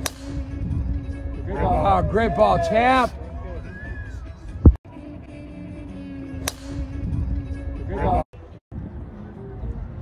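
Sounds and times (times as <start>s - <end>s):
golf club striking ball: 0.0s - 0.4s, 6.4s - 7.0s.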